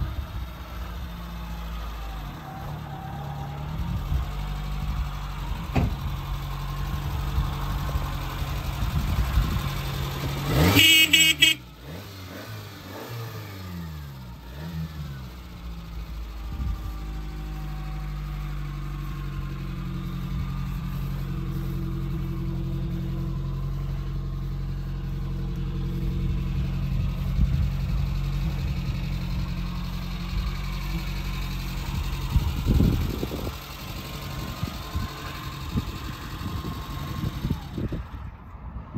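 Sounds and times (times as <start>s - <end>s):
car engine revving: 1.0s - 38.2s.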